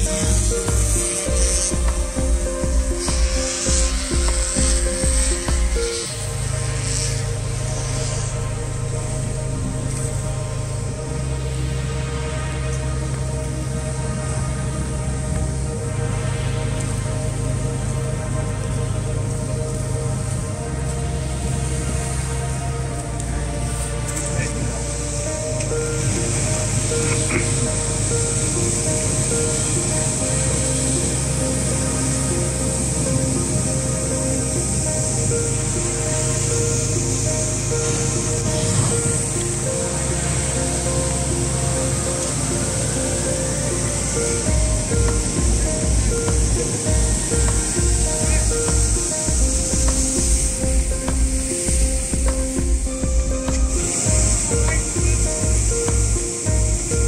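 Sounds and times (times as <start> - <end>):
pulsing beat: 0.0 - 6.2, 44.4 - 57.0
synth tones over long bass notes: 0.0 - 57.0.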